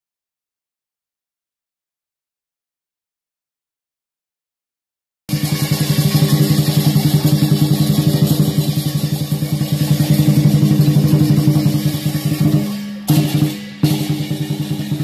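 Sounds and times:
drum beaten in fast rhythm: 0:05.3 - 0:15.0.

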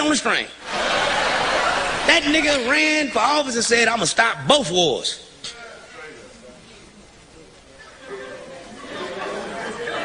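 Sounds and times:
audience murmuring: 0:05.4 - 0:10.0.

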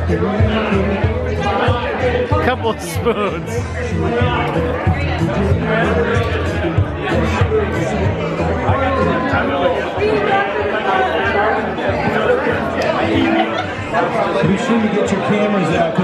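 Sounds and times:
music playing: 0:00.0 - 0:10.4
people chatting: 0:02.3 - 0:03.6.

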